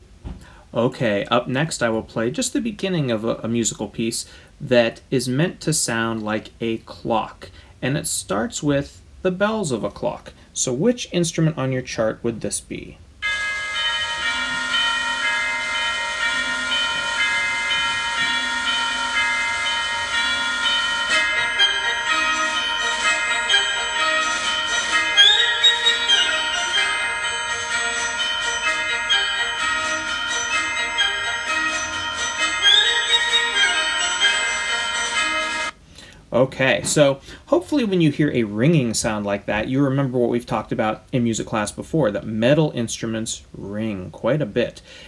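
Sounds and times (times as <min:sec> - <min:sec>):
orchestral music with tubular bells: 0:13.2 - 0:35.8.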